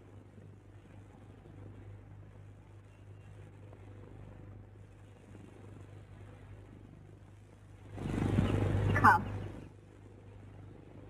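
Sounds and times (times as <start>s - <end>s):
film soundtrack hum and hiss: 0.0s - 11.0s.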